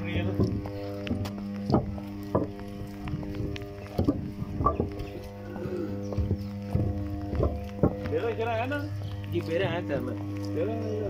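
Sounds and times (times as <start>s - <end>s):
footsteps on gravel: 0.0s - 11.0s
low electrical hum: 0.0s - 11.0s.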